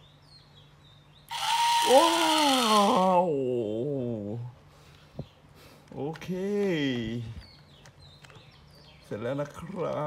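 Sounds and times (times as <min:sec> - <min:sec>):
toy motor whirring: 0:01.3 - 0:03.2.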